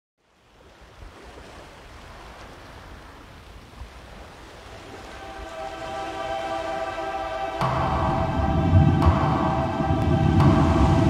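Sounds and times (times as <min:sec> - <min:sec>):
rushing surf-like noise: 0:04.7 - 0:11.0
held musical chord: 0:05.1 - 0:11.0.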